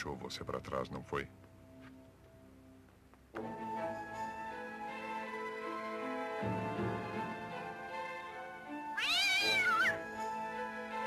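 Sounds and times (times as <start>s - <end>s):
orchestral background music: 0.0s - 11.0s
cat meowing: 9.0s - 10.0s.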